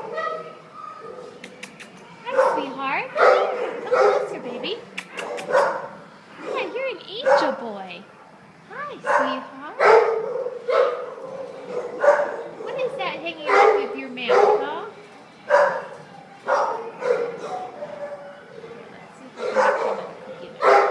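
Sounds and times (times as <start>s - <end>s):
sharp clicks: 1.4s - 2.1s, 4.9s - 5.5s
dogs barking: 2.3s - 7.6s, 9.0s - 18.8s, 19.4s - 20.9s.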